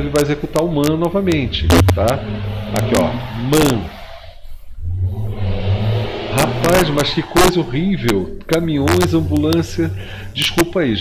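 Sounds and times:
heavy trucks passing: 0:00.0 - 0:10.8.

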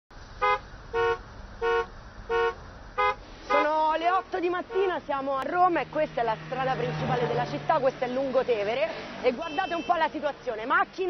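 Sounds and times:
car horn honking: 0:00.4 - 0:05.1, 0:09.2 - 0:10.3.

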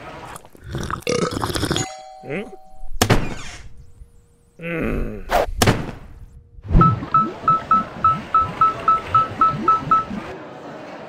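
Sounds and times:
character mumbling: 0:04.6 - 0:05.4.

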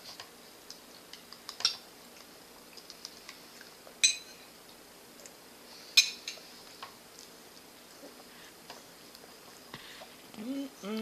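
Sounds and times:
metal spoon clinking against bowl: 0:04.0 - 0:04.4.

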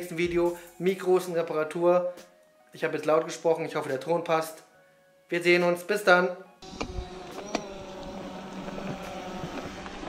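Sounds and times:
bike tyres on dirt: 0:06.6 - 0:10.0
low hum: 0:06.6 - 0:10.0.

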